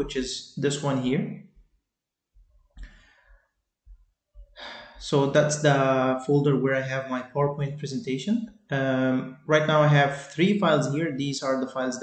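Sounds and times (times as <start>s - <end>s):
man breathing: 2.7s - 3.8s, 4.4s - 5.2s.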